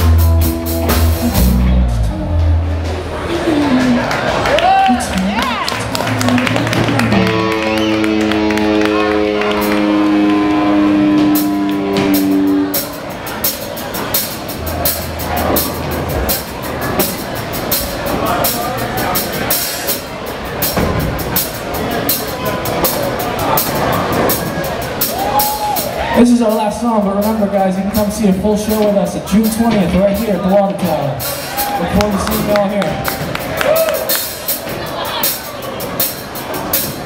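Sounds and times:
stray instrument notes: 0.0 - 5.1, 5.8 - 37.0
crowd chatter: 0.0 - 37.0
scattered clapping: 4.0 - 10.5, 31.8 - 34.7
electric guitar chord ringing: 6.8 - 13.4.

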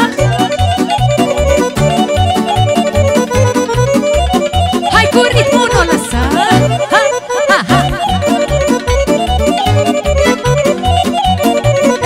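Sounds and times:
bass and drum beat: 0.0 - 6.8, 7.7 - 12.0
accordion dance tune: 0.0 - 12.0.

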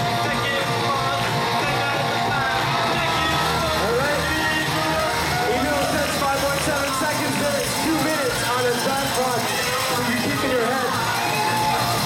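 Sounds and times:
crowd chattering in echoing hall: 0.0 - 12.0
music over public address: 0.0 - 12.0.

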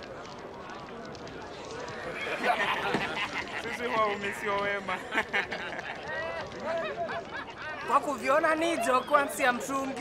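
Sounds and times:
men talking: 2.0 - 10.0
men laughing: 2.1 - 4.2, 4.8 - 8.0.

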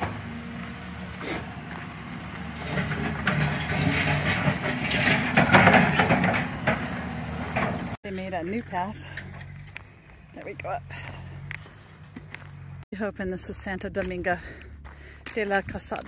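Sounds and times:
rough working noise: 0.0 - 12.9
excavator diesel engine running: 0.0 - 15.4.

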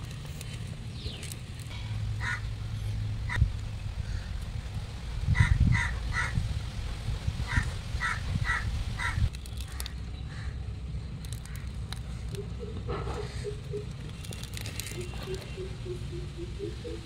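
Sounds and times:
bird calling: 11.3 - 17.0.

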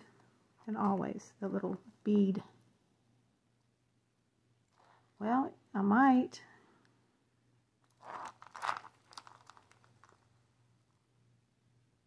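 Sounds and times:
chain rustling in hand: 7.9 - 10.2.

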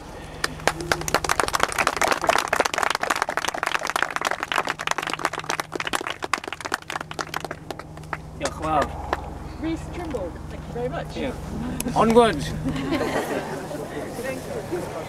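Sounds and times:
small group applauding: 0.4 - 9.2.

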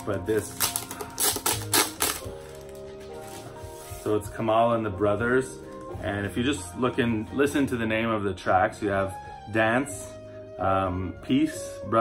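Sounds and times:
record jacket rustling and knocking: 0.0 - 4.5.

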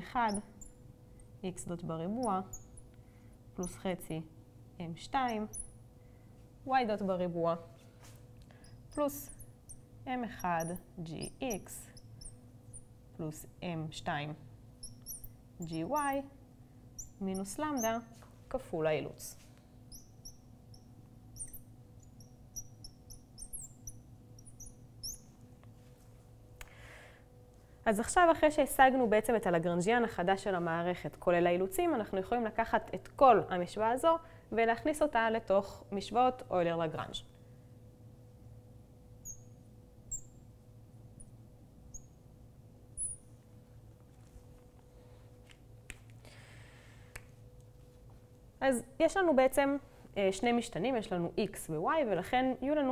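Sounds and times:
marker squeaking on glass: 0.0 - 0.8, 2.0 - 2.9, 3.6 - 3.8, 5.2 - 5.8, 8.5 - 12.9, 14.8 - 16.2, 17.0 - 18.2, 19.2 - 25.4, 39.2 - 40.4, 41.2 - 42.2, 43.0 - 43.3
faint steady hum: 0.0 - 52.9.

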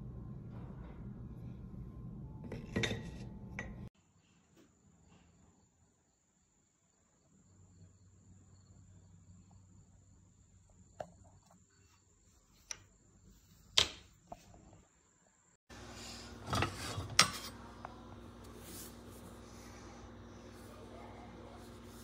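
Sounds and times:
steady background hum: 11.6 - 22.0.

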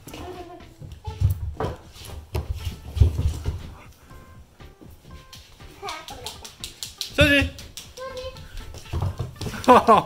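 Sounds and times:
footsteps on wooden floor: 0.0 - 10.0.

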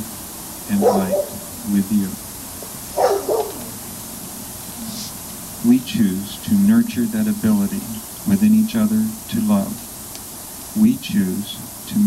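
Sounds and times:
high dog-like yelp: 0.7 - 1.7, 2.6 - 3.8.

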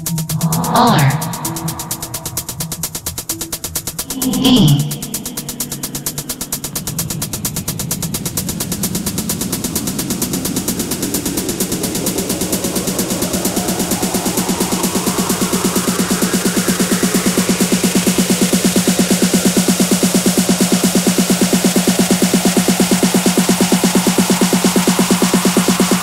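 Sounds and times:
downward-sweeping effect: 0.2 - 2.8, 4.0 - 6.9
electronic dance music: 0.3 - 2.6, 4.1 - 6.6
rising sweep: 0.3 - 2.8, 4.0 - 6.8.

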